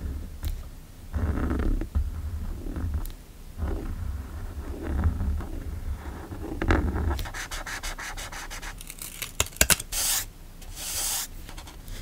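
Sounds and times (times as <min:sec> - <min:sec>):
hand rubbing across paper: 0:03.6 - 0:08.9, 0:09.9 - 0:12.0
pen scratching on paper: 0:03.6 - 0:09.1, 0:09.9 - 0:11.8.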